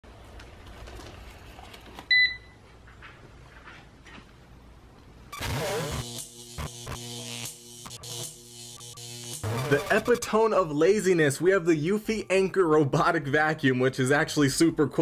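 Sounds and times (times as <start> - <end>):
faint room noise: 0.1 - 5.3
robot vacuum electronic beep: 5.4 - 10.2.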